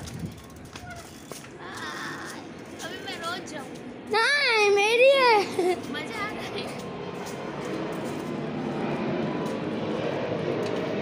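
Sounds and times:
wind on microphone: 0.0s - 1.4s.

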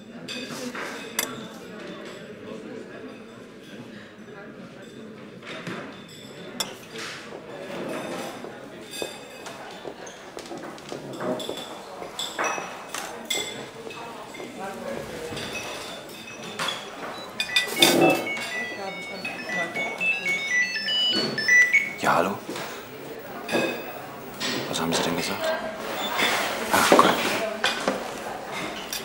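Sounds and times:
background chatter: 0.0s - 29.0s
cutlery and dishes clinking: 0.2s - 2.3s, 4.8s - 20.5s, 22.5s - 29.0s.

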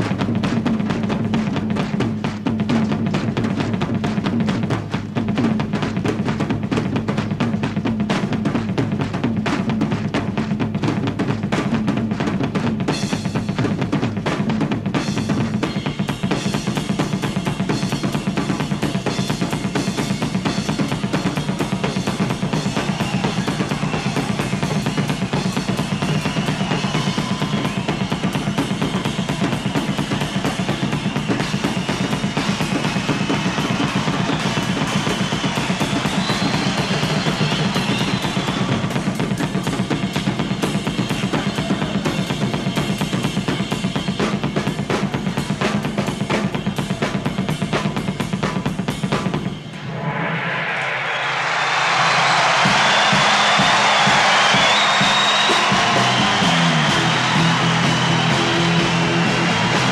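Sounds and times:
rock drum solo: 0.0s - 49.6s, 51.5s - 59.9s.

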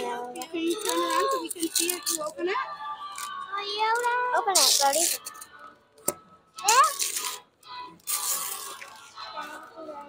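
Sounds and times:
faint voices: 0.0s - 5.9s, 6.6s - 10.0s
wrapping paper tearing: 4.5s - 5.4s, 6.7s - 9.3s.

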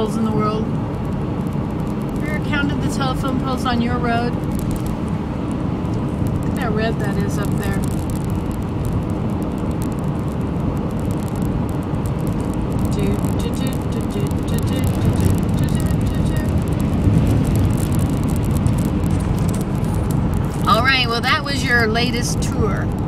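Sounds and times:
car cabin road and engine rumble: 0.0s - 23.0s.

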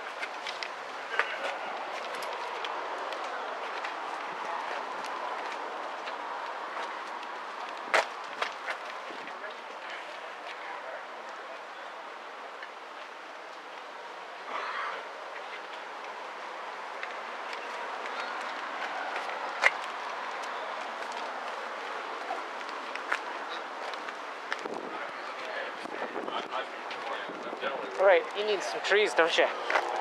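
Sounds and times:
faint voices: 0.0s - 30.0s
outdoor background noise: 0.0s - 30.0s.

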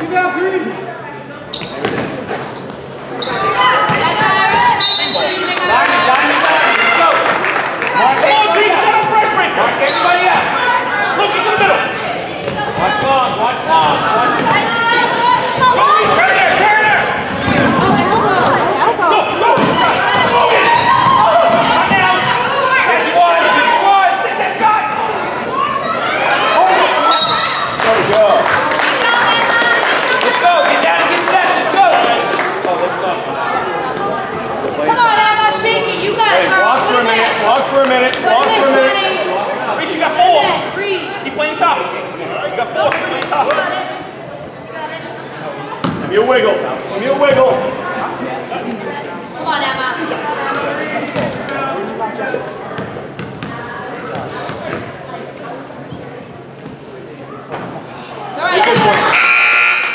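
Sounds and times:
people calling and shouting: 0.0s - 59.9s.

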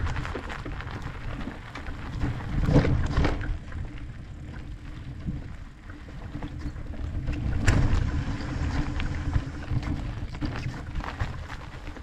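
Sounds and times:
bike rattles and knocks: 0.0s - 12.0s
bike tyre rumble on dirt: 0.0s - 12.0s
wind buffeting microphone: 0.0s - 12.0s.

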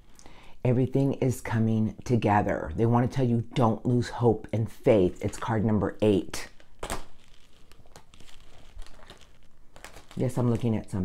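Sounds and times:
cards rustling and sliding: 6.5s - 10.8s.

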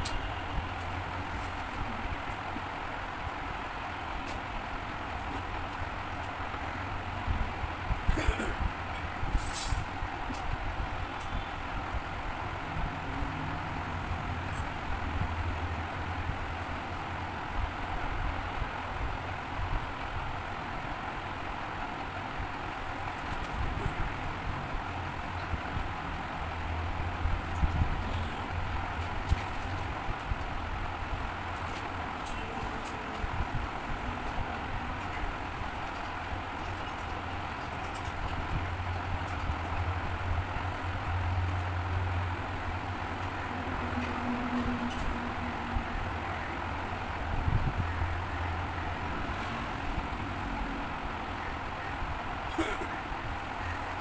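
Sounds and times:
background rumble and hiss: 0.0s - 54.0s.

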